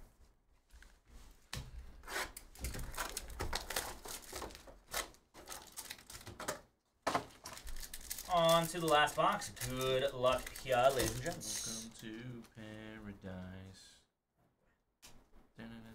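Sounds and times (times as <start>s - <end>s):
foil packs crinkling: 2.5s - 6.5s, 7.2s - 12.2s.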